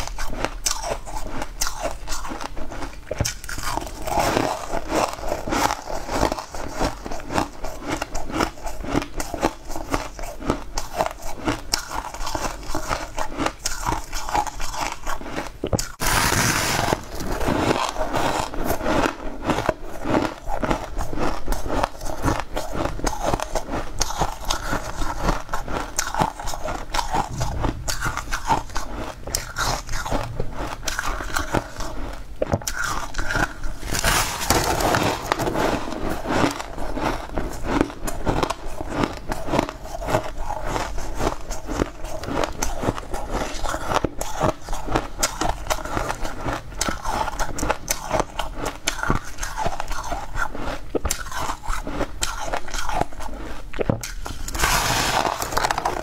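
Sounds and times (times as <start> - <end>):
crunching and chewing ice: 0.0 - 56.0.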